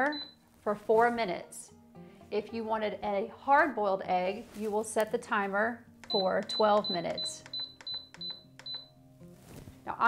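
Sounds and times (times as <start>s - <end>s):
pressure cooker panel beeping: 0.0s - 0.4s, 6.0s - 8.9s.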